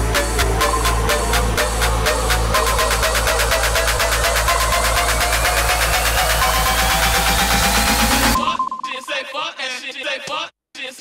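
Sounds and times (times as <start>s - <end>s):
rising synth sweep: 0.0s - 8.4s
vocal sample over sparse beat: 0.0s - 10.5s.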